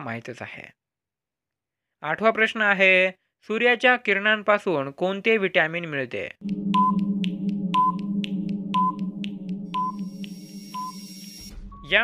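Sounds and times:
clock-like ticks: 0:06.4 - 0:11.4
low electronic drone: 0:06.4 - 0:11.6
short high beeps: 0:09.7 - 0:11.6.

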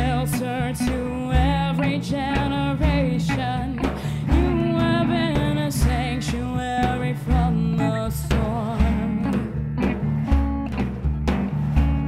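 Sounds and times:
woman singing into a microphone: 0:00.0 - 0:09.6
instrumental backing with bass beat: 0:00.0 - 0:12.0.

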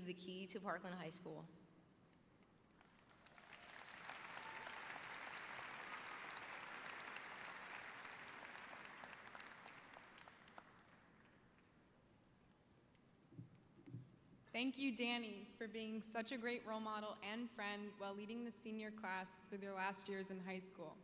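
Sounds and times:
audience applause: 0:02.8 - 0:11.4.

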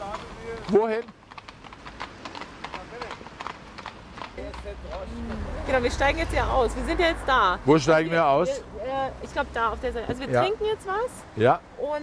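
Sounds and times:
horse hooves clip-clopping on wet street: 0:00.0 - 0:11.2.

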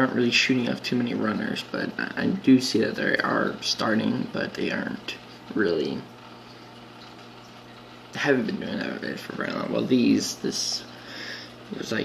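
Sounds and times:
aquarium equipment humming: 0:00.0 - 0:12.0.

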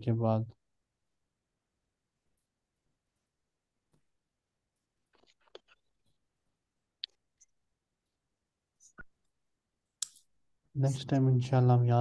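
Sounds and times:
man speaking: 0:10.8 - 0:12.0.

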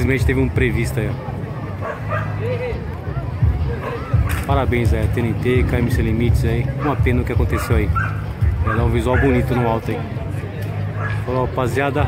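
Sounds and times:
man speaking: 0:04.5 - 0:08.0, 0:08.6 - 0:10.1
dog yipping and whimpering: 0:07.6 - 0:09.5.

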